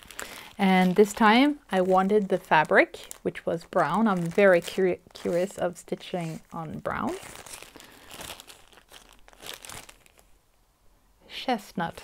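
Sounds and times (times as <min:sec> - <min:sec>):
plastic bag crinkling: 0:00.0 - 0:10.4.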